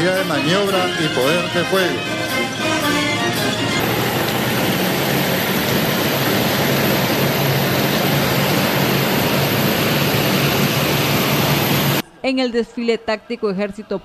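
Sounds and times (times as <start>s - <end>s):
low engine drone: 1.4s - 12.0s.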